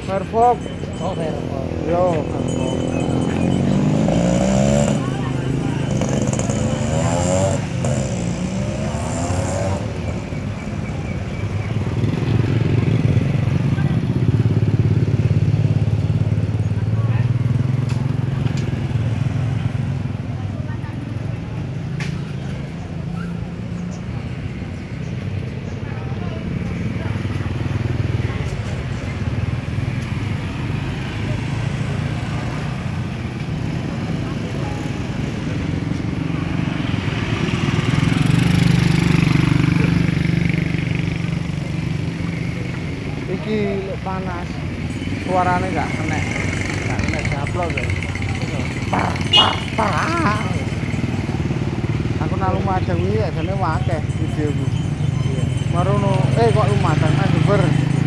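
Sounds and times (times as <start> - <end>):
motorbike engines passing: 0.0 - 58.0
people's voices: 0.0 - 58.0.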